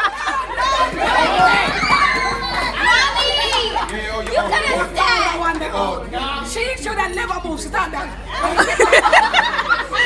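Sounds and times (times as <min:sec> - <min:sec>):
children and adults talking: 0:00.0 - 0:10.0.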